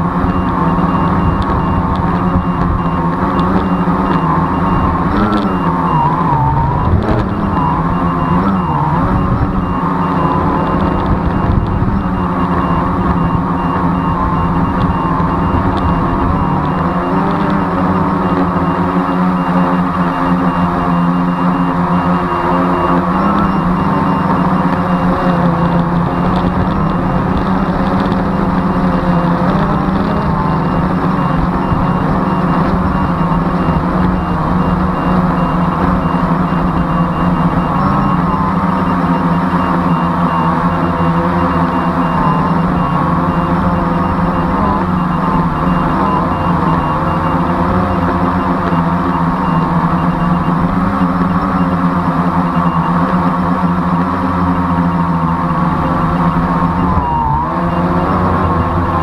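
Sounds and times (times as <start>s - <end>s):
drone propellers buzzing: 0.0s - 59.0s.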